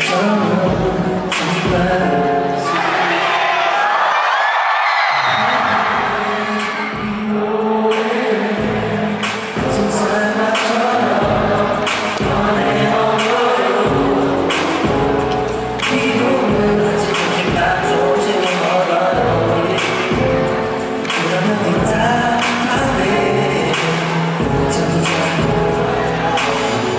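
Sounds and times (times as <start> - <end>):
amplified backing music with beat: 0.0 - 2.7, 6.0 - 26.9
man singing into microphone: 0.0 - 3.8, 5.2 - 26.9.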